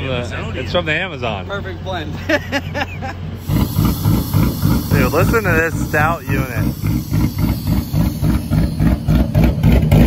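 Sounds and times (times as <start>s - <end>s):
hiss: 3.4s - 9.6s.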